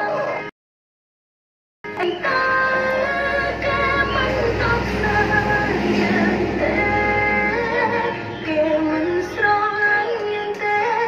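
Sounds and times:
song with singing voice: 0.0 - 0.5, 1.9 - 11.0.

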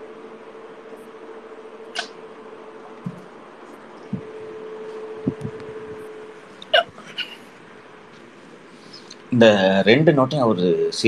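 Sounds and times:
faint steady hiss: 3.0 - 11.0
person hiccuping: 6.7 - 7.4.

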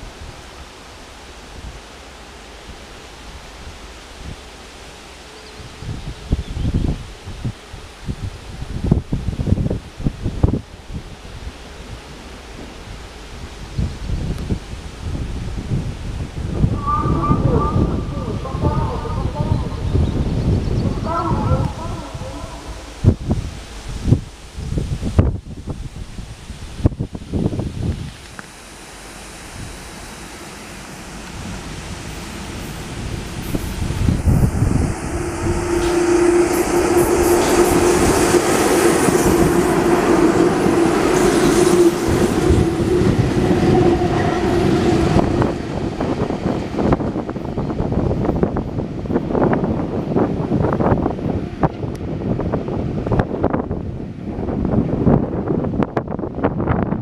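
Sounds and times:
electric locomotives passing: 0.0 - 57.0.

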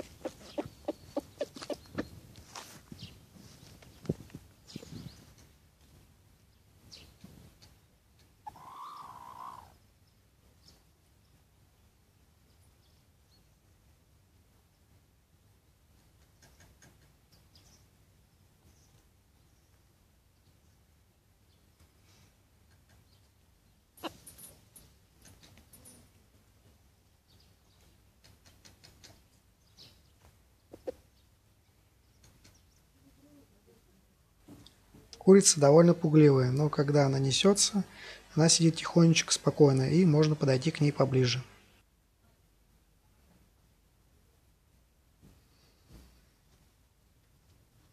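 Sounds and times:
chickens clucking softly: 0.0 - 2.6, 7.2 - 9.8, 30.6 - 31.2.

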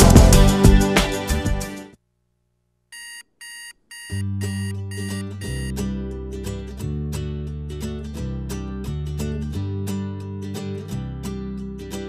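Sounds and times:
alarm clock beeping: 3.0 - 5.7.

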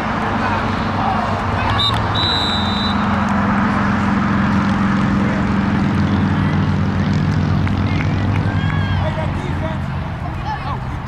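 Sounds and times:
constant wash of noise: 0.0 - 11.0
low engine drone: 0.0 - 11.0
referee's whistle blast: 1.7 - 3.1.

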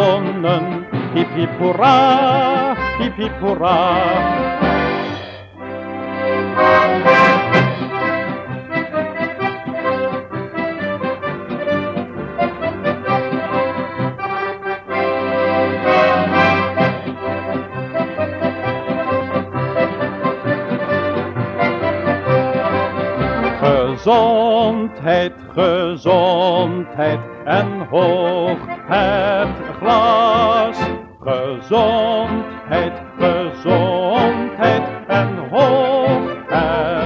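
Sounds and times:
accordion orchestra playing: 0.0 - 37.0.

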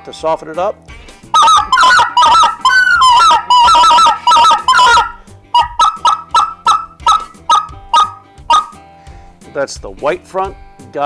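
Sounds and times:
goose call clucks: 1.4 - 8.8.

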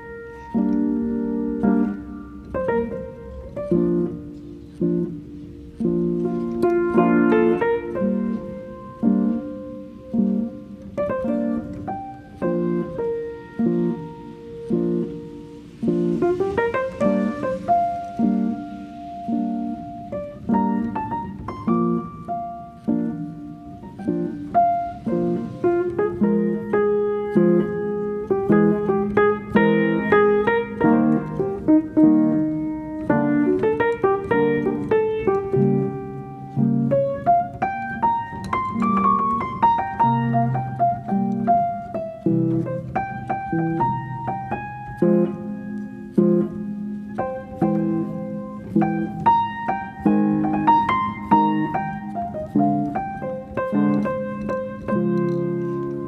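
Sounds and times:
gentle piano music: 0.0 - 56.0.

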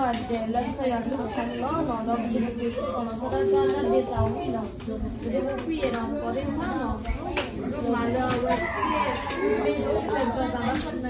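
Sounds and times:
children playing: 0.0 - 11.0
people chatting: 0.0 - 11.0.

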